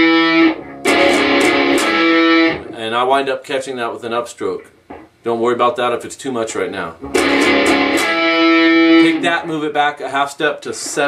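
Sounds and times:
electric guitar octaves: 0.0 - 2.8, 7.0 - 9.4.

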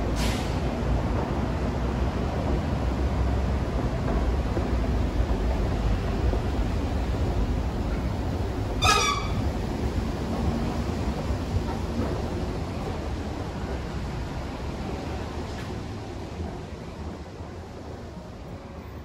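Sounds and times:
short high squeak: 8.8 - 9.4.

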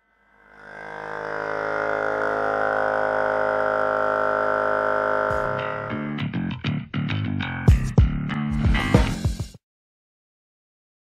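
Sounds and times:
engine buzzing drone: 0.0 - 6.8.

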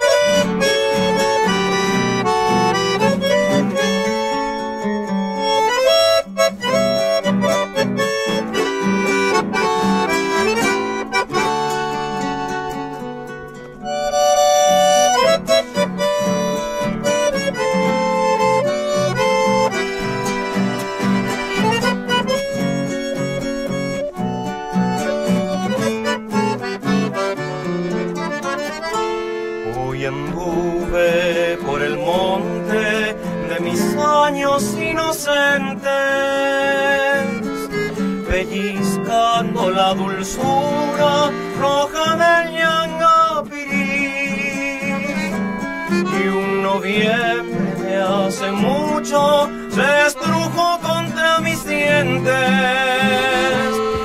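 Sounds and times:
acoustic guitar strummed and plucked: 0.0 - 54.0
button accordion playing lively melody: 0.0 - 54.0.

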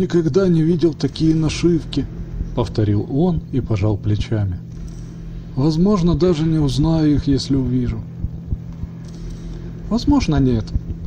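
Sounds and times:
man narrating: 0.0 - 4.7, 5.6 - 8.1, 9.9 - 10.8
steady low hum: 0.0 - 11.0
faint low thuds: 7.9 - 9.1.

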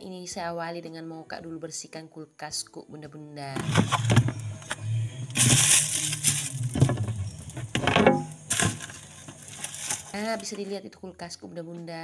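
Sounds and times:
plastic containers clattering: 3.6 - 10.6
rustling: 3.8 - 10.8.

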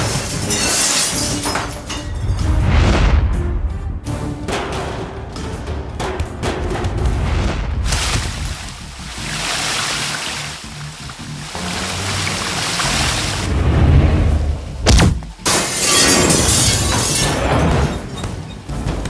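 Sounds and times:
glass shattering: 0.0 - 2.4, 14.9 - 18.2
background music: 0.0 - 19.0
sharp hit: 14.8 - 17.1.

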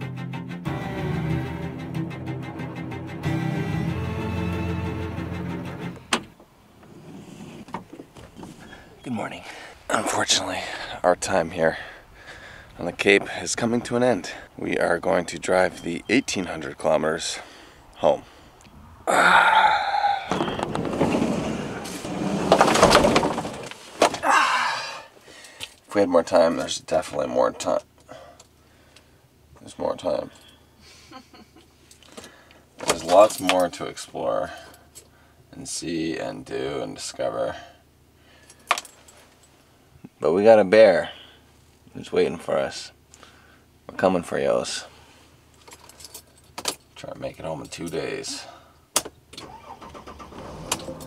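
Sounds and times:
sliding door rumbling on track: 20.3 - 23.6.

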